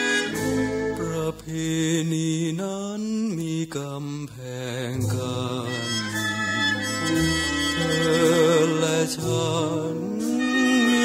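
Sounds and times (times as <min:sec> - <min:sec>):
soft band accompaniment: 0:00.0 - 0:02.4, 0:04.8 - 0:11.0
man singing ballad: 0:00.9 - 0:11.0.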